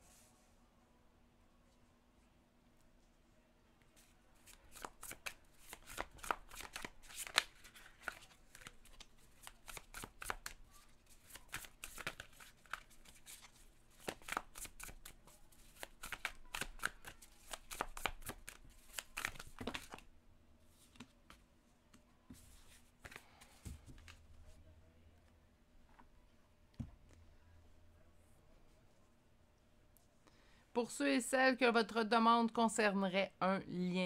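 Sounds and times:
cards being shuffled: 4.4s - 20.1s.

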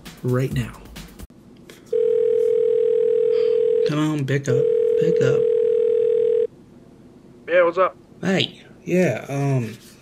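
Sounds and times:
telephone ringback tone: 1.9s - 6.5s.

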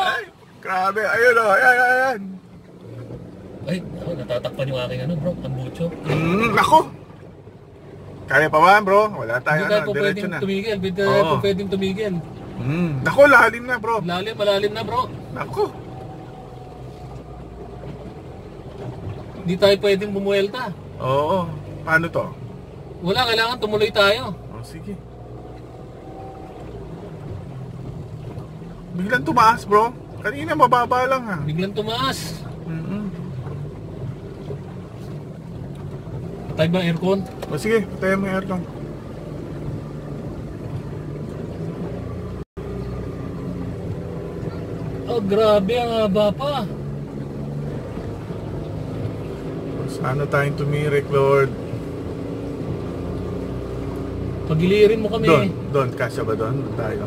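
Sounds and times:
car engine running low: 0.0s - 57.0s.

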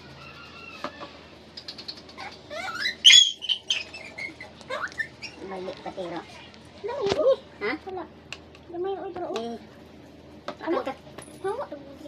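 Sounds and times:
puppy whining and yelping: 1.9s - 5.5s.

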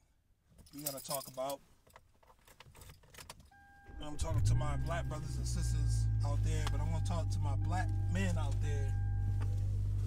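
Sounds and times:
steady high tone: 3.8s - 9.7s
low hum: 3.9s - 10.0s.

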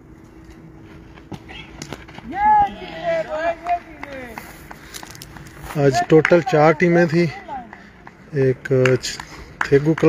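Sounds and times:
players shouting high-pitched calls: 1.4s - 4.6s.

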